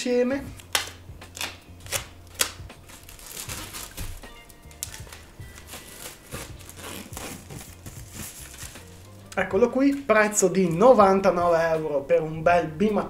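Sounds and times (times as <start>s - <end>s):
faint background music: 0.0s - 13.0s
plastic wrapping crinkling: 0.7s - 9.2s.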